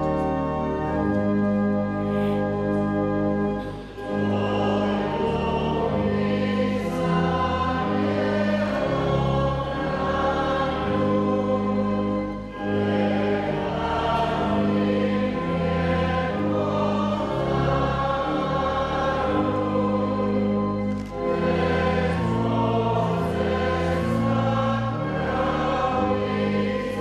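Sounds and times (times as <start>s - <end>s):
congregation singing a hymn: 0.0s - 27.0s
organ chords: 0.0s - 27.0s.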